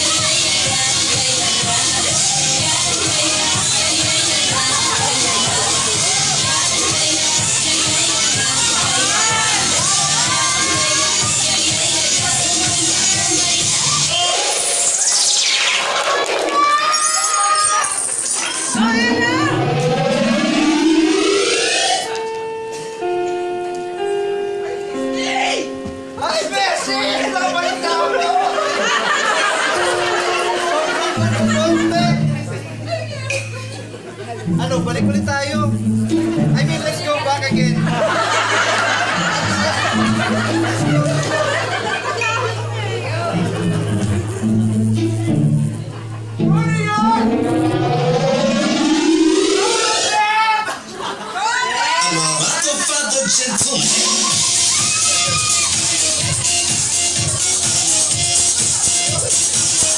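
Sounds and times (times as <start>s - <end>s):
rising siren-like sound effect: 16.8s - 22.3s, 45.9s - 50.4s
steady held tones: 17.5s - 50.4s.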